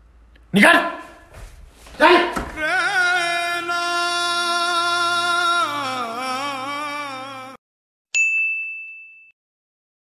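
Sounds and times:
bright metallic ding: 0:08.2 - 0:09.4.

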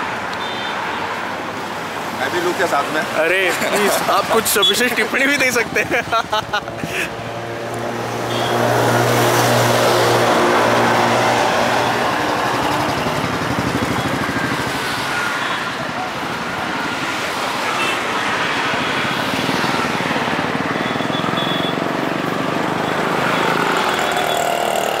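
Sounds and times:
motorcycle and traffic noise: 0:00.0 - 0:25.0
people talking: 0:02.2 - 0:06.0.

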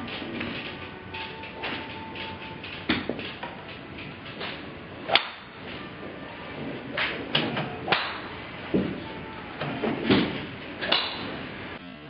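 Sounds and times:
golf club striking ball: 0:05.1 - 0:05.5.

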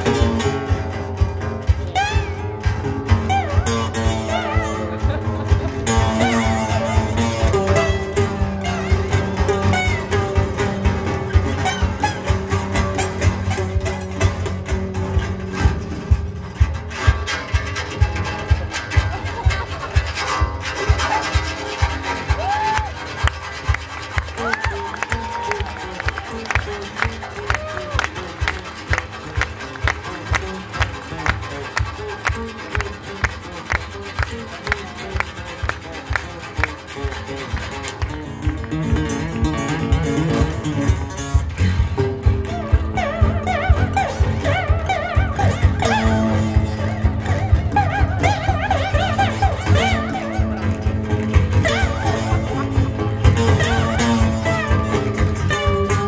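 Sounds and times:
sliding guitar notes: 0:00.0 - 0:56.0
sustained low guitar notes: 0:00.0 - 0:56.0
percussive taps on acoustic guitar: 0:28.0 - 0:56.0.

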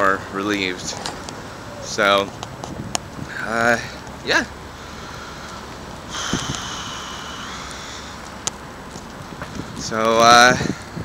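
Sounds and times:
city street traffic noise: 0:00.0 - 0:11.0
high steady whine: 0:04.2 - 0:10.5.

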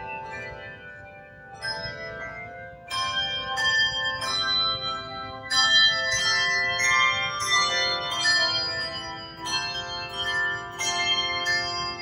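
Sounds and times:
handbell choir ringing: 0:00.0 - 0:12.0.

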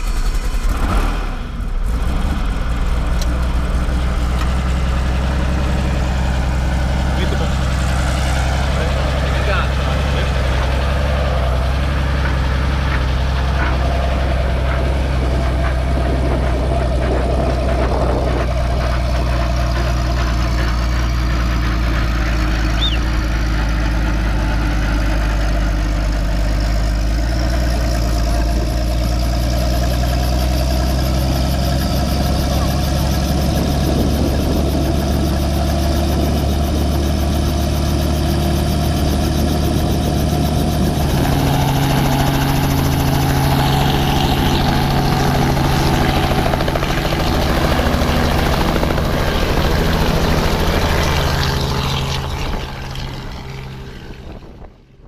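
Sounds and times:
helicopter engine and rotor: 0:00.0 - 0:55.0.

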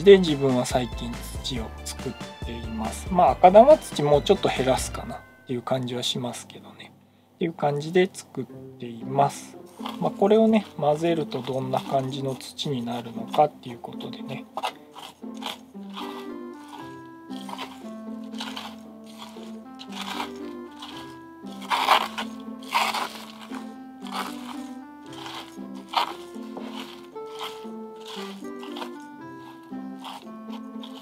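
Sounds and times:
simple melody background music: 0:00.0 - 0:31.0
spoon stirring gritty soil: 0:09.0 - 0:31.0.

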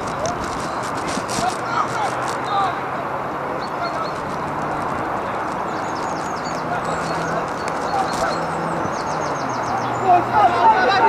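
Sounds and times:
faint distant voices: 0:00.0 - 0:11.0
steady rushing noise: 0:00.0 - 0:11.0.

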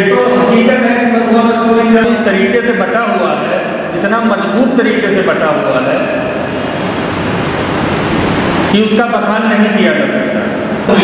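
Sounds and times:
steady rushing noise: 0:05.0 - 0:11.0.

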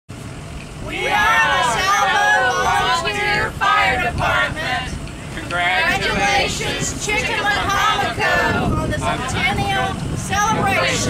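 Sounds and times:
outdoor background hum: 0:00.1 - 0:11.0.

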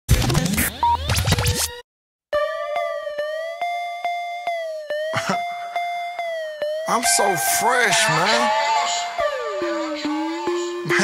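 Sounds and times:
record scratching: 0:00.1 - 0:01.8.

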